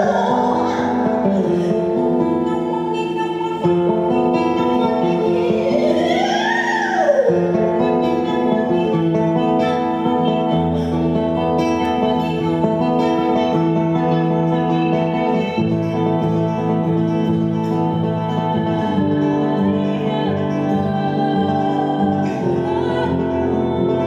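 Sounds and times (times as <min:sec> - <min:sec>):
fingerstyle classical guitar: 0:00.0 - 0:24.0
woman singing wordlessly: 0:00.0 - 0:24.0.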